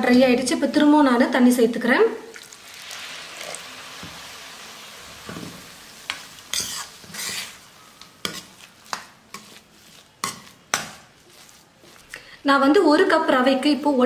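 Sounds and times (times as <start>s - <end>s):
food sizzling in a pan: 2.3s - 12.2s
ladle scraping steel pan: 6.5s - 7.6s.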